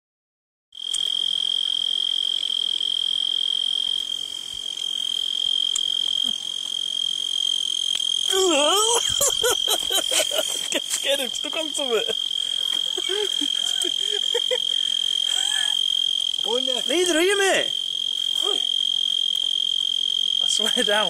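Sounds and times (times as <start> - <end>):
crickets trilling: 0.8 - 21.0
person speaking: 8.3 - 15.8, 16.4 - 18.7.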